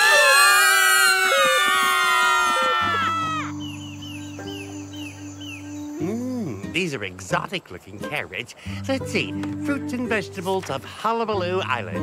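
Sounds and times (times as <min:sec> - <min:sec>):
soft background music: 0:02.4 - 0:12.0.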